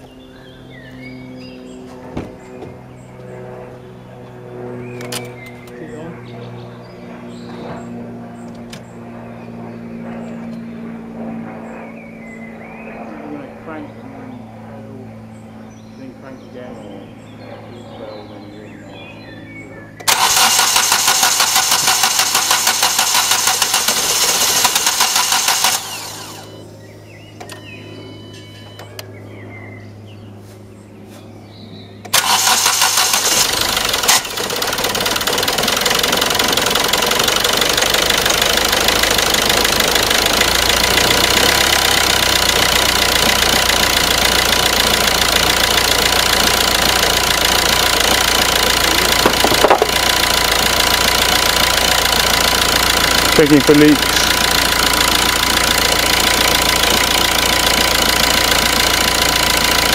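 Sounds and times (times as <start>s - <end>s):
diesel engine cranking: 20.0s - 26.6s, 32.0s - 59.9s
diesel engine idling: 20.0s - 28.3s, 32.1s - 59.9s.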